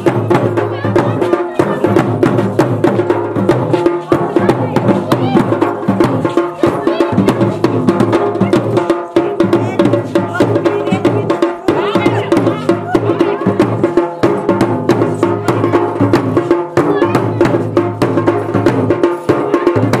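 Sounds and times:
fast folk drumming: 0:00.0 - 0:20.0
folk melody: 0:00.0 - 0:20.0.

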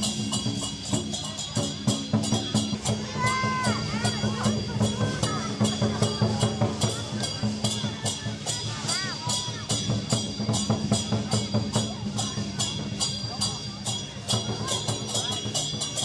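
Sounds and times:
cymbal clashes: 0:00.0 - 0:16.0
drum beat: 0:00.0 - 0:16.0.

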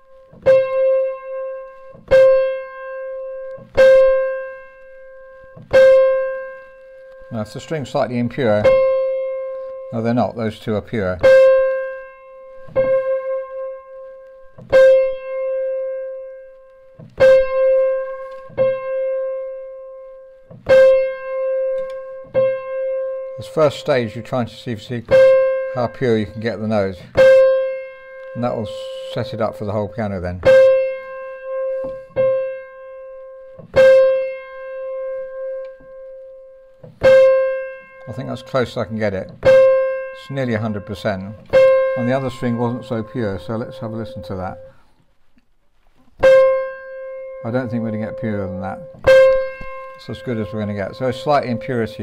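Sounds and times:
piano note struck and ringing: 0:00.0 - 0:44.8, 0:46.2 - 0:52.0.

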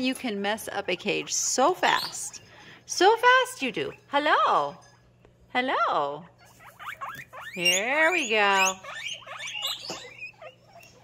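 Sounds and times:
guinea pigs squeaking: 0:00.0 - 0:05.1, 0:06.4 - 0:11.0.

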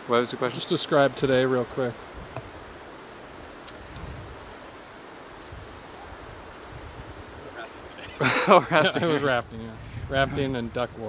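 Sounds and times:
steady background hiss: 0:00.0 - 0:11.0
wind rumbling on microphone: 0:01.0 - 0:11.0.

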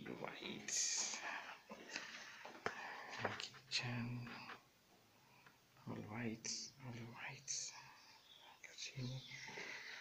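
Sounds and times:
person speaking quietly: 0:05.9 - 0:09.6.

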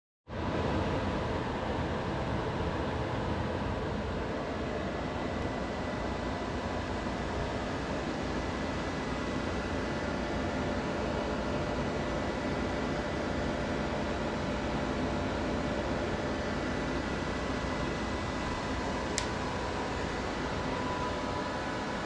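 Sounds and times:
space heater fan whir: 0:00.3 - 0:22.0
faint high whine: 0:01.2 - 0:22.0.

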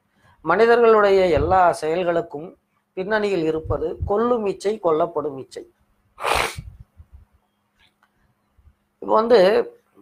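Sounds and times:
man sneezing: 0:06.2 - 0:06.8.

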